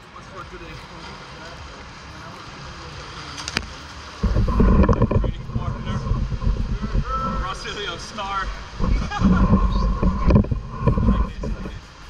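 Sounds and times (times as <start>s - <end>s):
low rumble of water: 0.1s - 12.0s.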